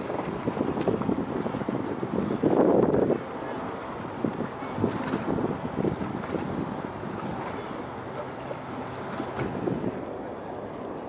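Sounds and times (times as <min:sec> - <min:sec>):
open water wash: 0:00.0 - 0:11.0
wind buffeting microphone: 0:00.0 - 0:11.0.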